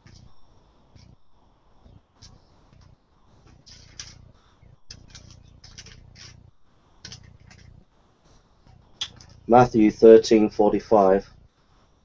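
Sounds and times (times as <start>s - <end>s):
pages rustling: 2.2s - 4.2s, 4.9s - 6.4s, 7.0s - 7.8s, 9.0s - 9.5s.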